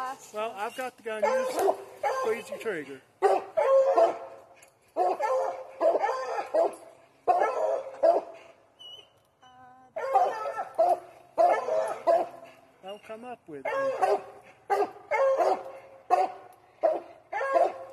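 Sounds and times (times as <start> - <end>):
hounds barking: 1.1 - 8.6, 10.0 - 12.8, 13.6 - 17.9.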